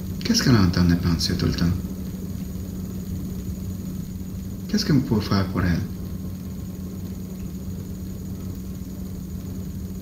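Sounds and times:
low hum with faint hiss: 0.0s - 10.0s.

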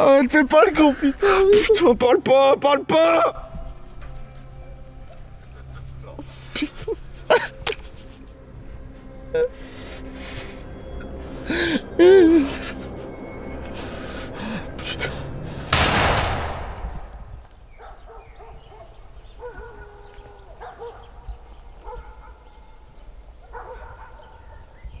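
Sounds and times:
pistol shot: 15.7s - 17.2s.

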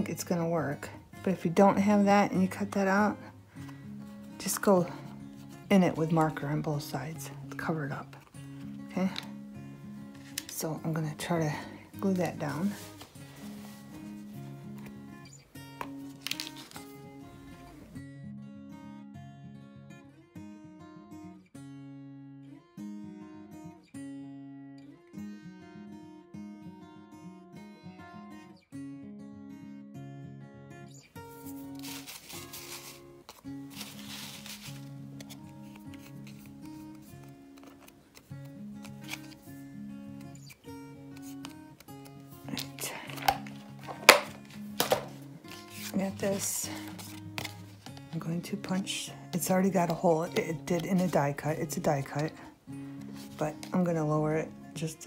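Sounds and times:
background music with plucked notes: 0.0s - 55.0s
paper and craft supplies handled: 10.1s - 10.6s, 12.0s - 15.0s, 15.8s - 17.0s, 31.3s - 39.5s, 40.2s - 54.0s.

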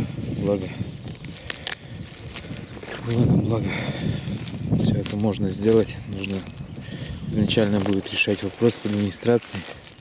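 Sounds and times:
footsteps through dry grass: 0.0s - 10.0s.

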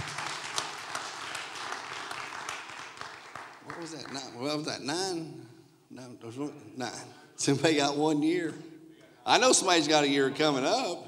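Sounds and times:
audience applauding: 0.0s - 4.4s.

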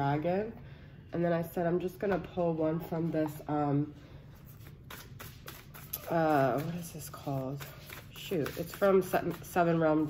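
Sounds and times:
cards being shuffled: 4.5s - 9.5s.

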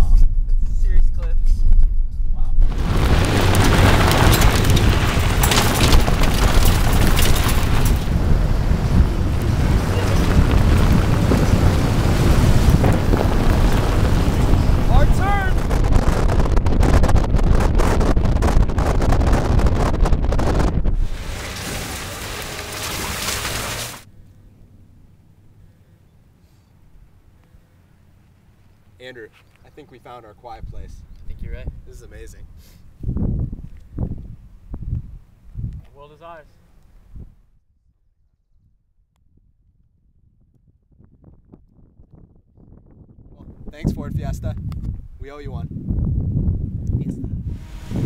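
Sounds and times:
wind buffeting microphone: 0.0s - 24.1s, 30.5s - 35.9s, 39.3s - 48.0s
car driving on gravel: 2.5s - 24.3s, 47.5s - 48.0s.

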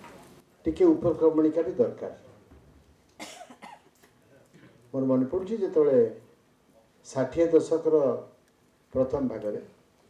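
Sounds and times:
man coughing: 3.2s - 3.9s.

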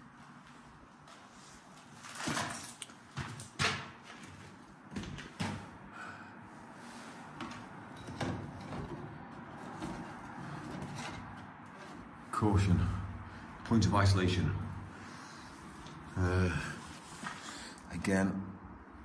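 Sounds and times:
knocks and scrapes on metal: 7.4s - 12.2s.

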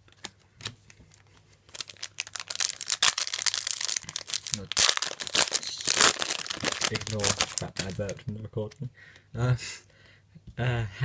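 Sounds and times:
foil wrapper crinkling and tearing: 1.1s - 8.3s.

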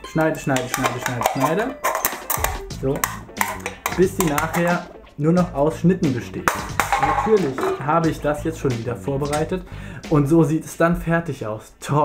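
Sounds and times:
scissors snipping metal can: 0.5s - 4.8s.

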